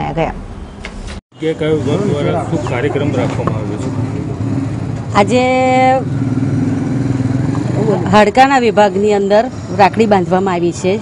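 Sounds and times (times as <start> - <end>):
vehicle engine running: 1.6 - 9.1.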